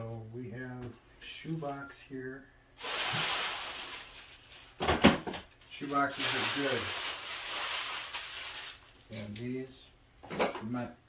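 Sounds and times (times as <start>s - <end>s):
sharp crackle of wrapping: 2.8s - 4.8s, 5.6s - 9.1s
crinkly wrapping rustling: 2.8s - 9.2s.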